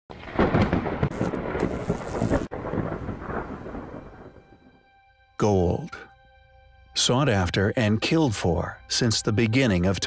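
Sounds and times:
thunder rumbling and crackling: 0:00.1 - 0:04.8.

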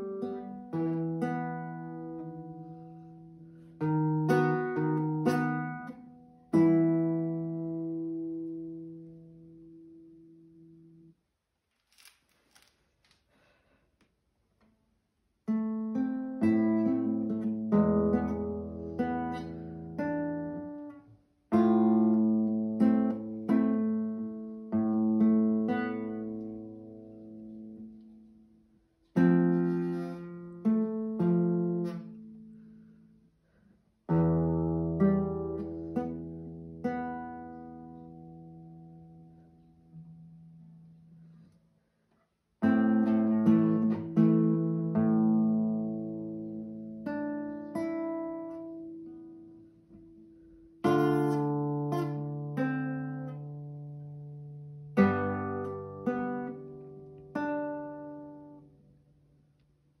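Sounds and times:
classical guitar playing: 0:00.0 - 0:11.2, 0:15.4 - 0:42.0, 0:42.6 - 1:00.0.

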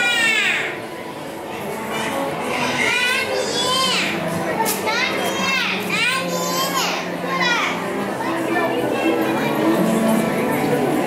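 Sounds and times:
children calling and squealing: 0:00.0 - 0:11.0
crowd chatter in a hall: 0:00.0 - 0:11.0.

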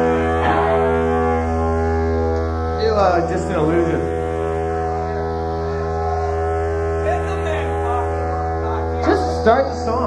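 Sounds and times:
droning distorted guitar chord: 0:00.0 - 0:10.0
steady bass note: 0:00.0 - 0:10.0.

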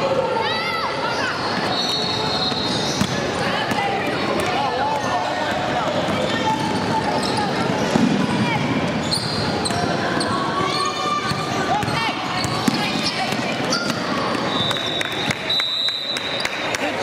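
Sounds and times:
hum of spectators' voices: 0:00.0 - 0:17.0
sneakers squeaking: 0:00.8 - 0:16.7.

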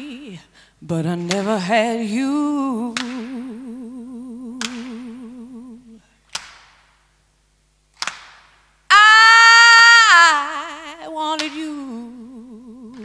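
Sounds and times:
woman singing a long note: 0:00.0 - 0:06.0, 0:08.9 - 0:13.0.

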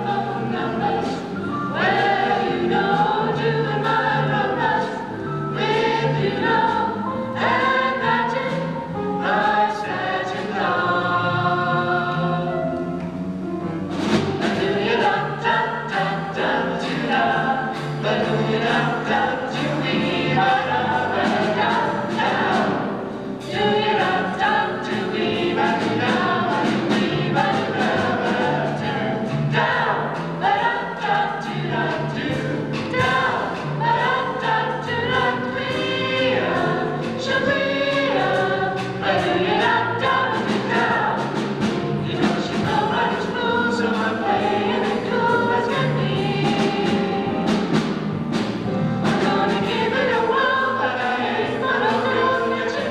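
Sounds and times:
vocal jazz group singing: 0:00.0 - 0:13.0, 0:14.0 - 0:52.9.

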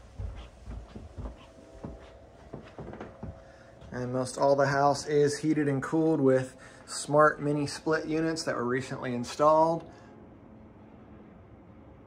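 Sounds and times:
footsteps on carpeted stairs: 0:00.0 - 0:04.2
faint steady hum: 0:00.0 - 0:12.0.

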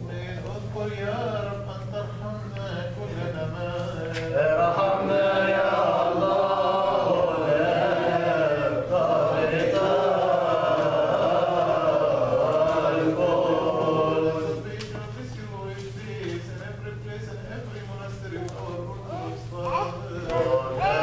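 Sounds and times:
liturgical chant: 0:00.0 - 0:21.0.

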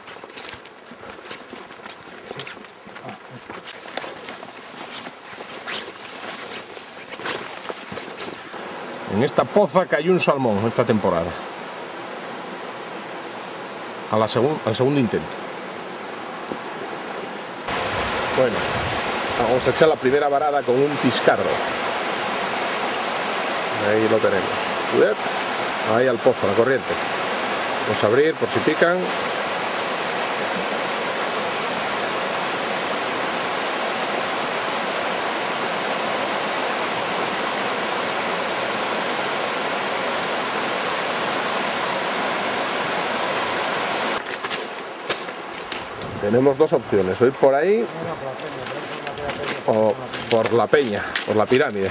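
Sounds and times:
river water rushing over stones: 0:00.0 - 0:08.8, 0:17.7 - 0:51.9.

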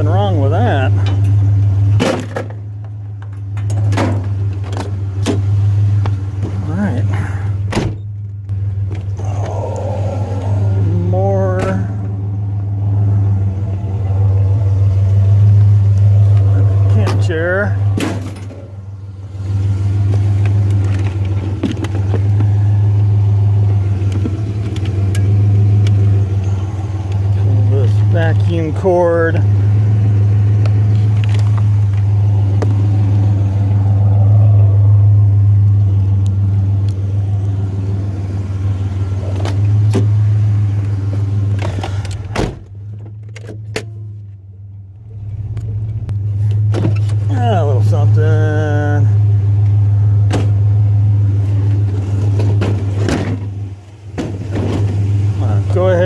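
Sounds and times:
vehicle engine droning: 0:00.0 - 0:56.0.

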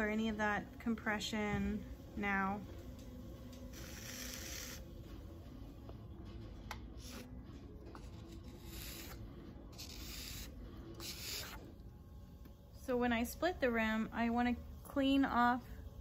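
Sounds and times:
potter's wheel humming: 0:00.0 - 0:16.0.

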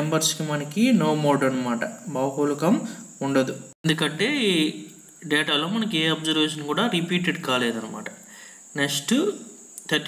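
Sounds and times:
faint high-pitched whine: 0:00.0 - 0:10.0
man speaking: 0:00.0 - 0:10.0.

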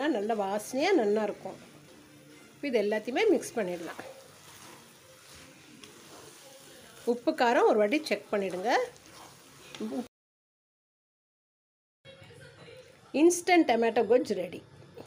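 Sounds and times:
food sizzling in a pan: 0:00.0 - 0:10.1
wooden spatula scraping: 0:00.0 - 0:10.1.

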